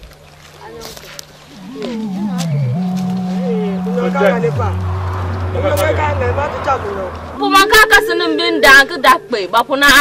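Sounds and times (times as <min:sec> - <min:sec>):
low held keyboard note: 0:01.5 - 0:07.2
higher sliding wavering tones: 0:01.5 - 0:09.9.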